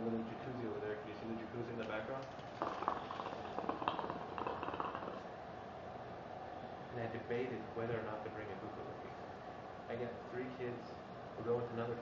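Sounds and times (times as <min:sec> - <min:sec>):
hookah water bubbling: 0:02.2 - 0:05.4.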